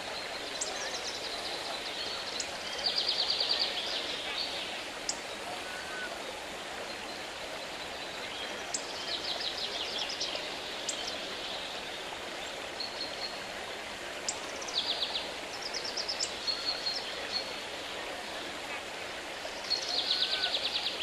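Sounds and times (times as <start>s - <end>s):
running water rushing: 0.0s - 21.0s.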